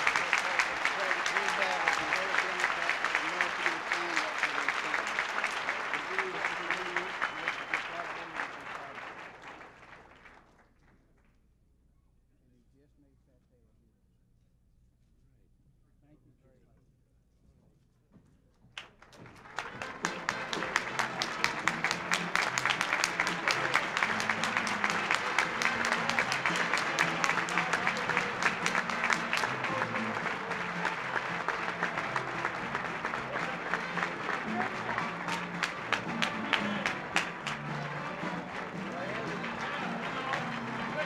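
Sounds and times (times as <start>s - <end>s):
music: 0.0s - 9.4s, 19.3s - 41.0s
audience applauding: 0.0s - 10.7s, 18.8s - 41.0s.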